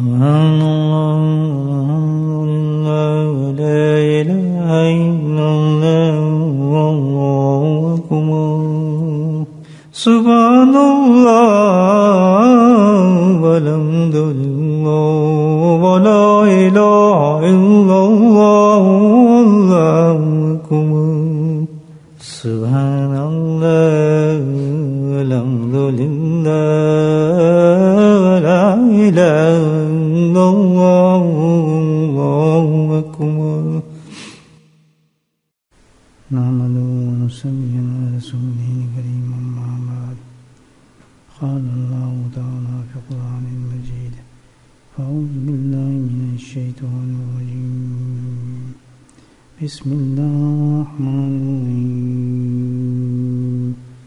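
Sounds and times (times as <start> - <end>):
man singing devotional chant: 0.0 - 34.2, 36.3 - 40.4, 41.3 - 44.3, 44.9 - 48.8, 49.6 - 54.0.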